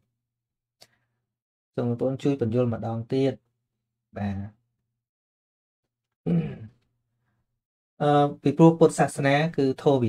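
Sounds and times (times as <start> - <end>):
man's short vocal syllable: 6.2 - 6.8.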